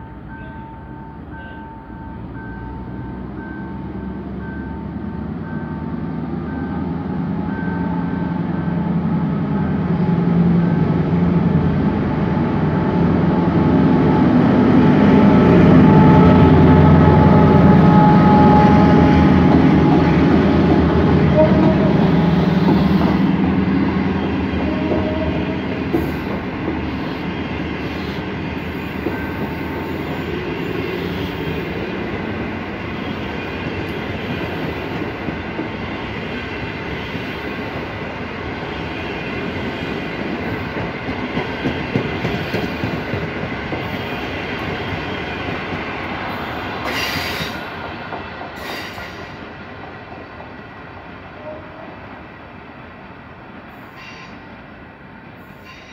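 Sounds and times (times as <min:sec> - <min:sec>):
train wheels rolling on rails: 0:02.2 - 0:51.2.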